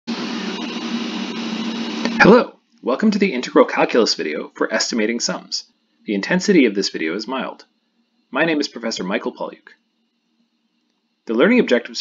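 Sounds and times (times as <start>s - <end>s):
low hum: 0.1s - 10.8s.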